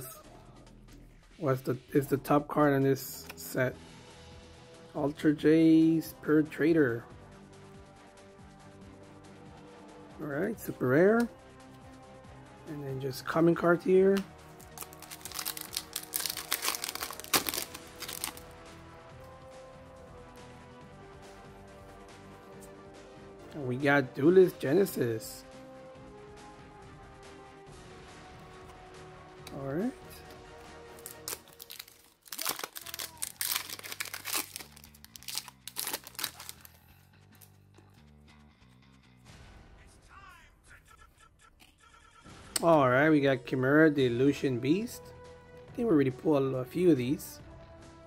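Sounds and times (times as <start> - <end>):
quiet background music with bass: 0.0 - 40.1, 40.8 - 48.0
foil wrapper crinkling: 14.6 - 18.5, 30.9 - 36.8.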